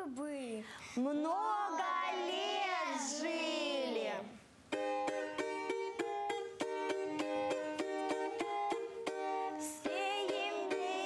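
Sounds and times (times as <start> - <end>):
children singing a carol: 1.8 - 4.1, 9.6 - 11.0.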